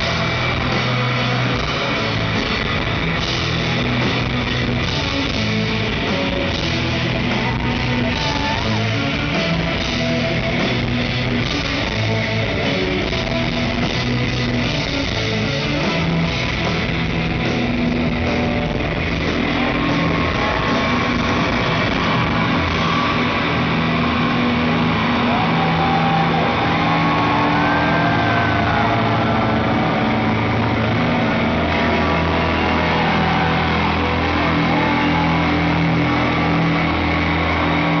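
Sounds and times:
distorted electric guitar: 0.0s - 38.0s
long held bass notes: 0.0s - 38.0s.

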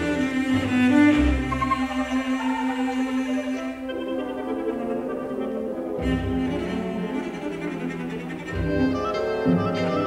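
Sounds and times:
orchestral accompaniment: 0.0s - 10.0s
solo cello melody: 0.0s - 10.0s.

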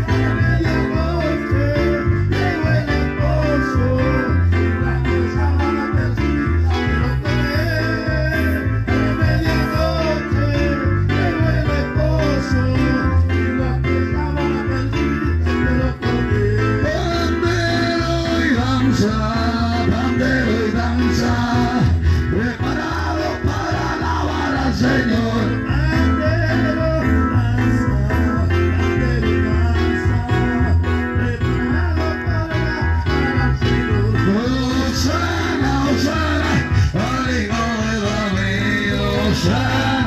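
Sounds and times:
backing music with bass line: 0.0s - 40.0s
man singing into a microphone: 0.0s - 40.0s.

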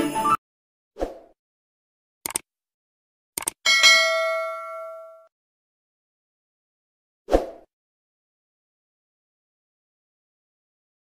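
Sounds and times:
bright bell ding: 3.7s - 5.3s.

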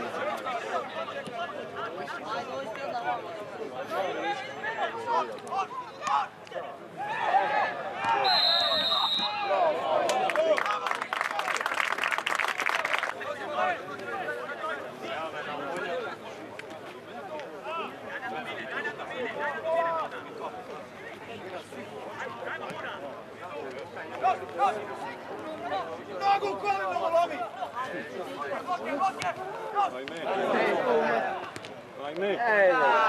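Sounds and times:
players and spectators shouting: 0.0s - 10.9s, 24.0s - 31.6s, 32.2s - 33.0s
referee's whistle: 8.1s - 9.6s.

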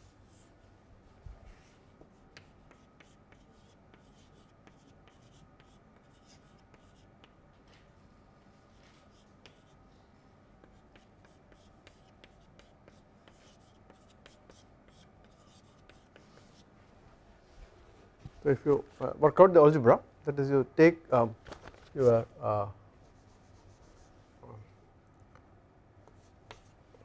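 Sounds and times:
chalk tapping and scratching: 2.0s - 7.4s, 8.7s - 9.8s, 10.6s - 16.7s, 18.6s - 19.2s, 23.1s - 24.1s, 26.1s - 26.8s.

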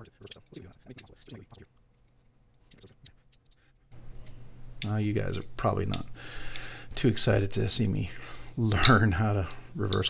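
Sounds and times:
hand rubbing on knife: 0.0s - 3.7s.

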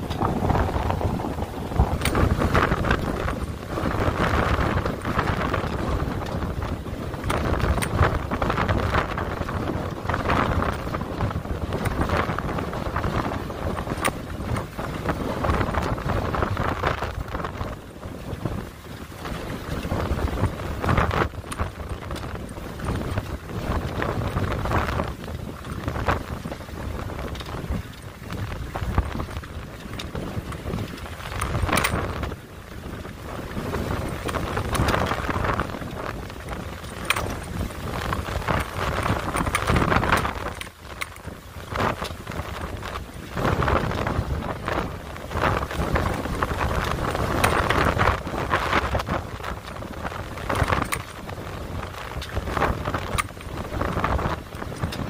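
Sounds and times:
gusting wind buffeting microphone: 0.0s - 55.0s.

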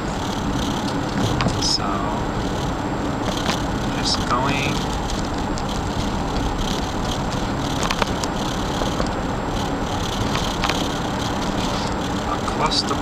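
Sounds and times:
car road and engine noise: 0.0s - 13.0s.

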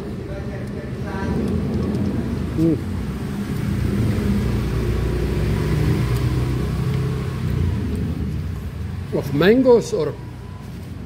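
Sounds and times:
vehicle engine droning: 0.0s - 11.0s.

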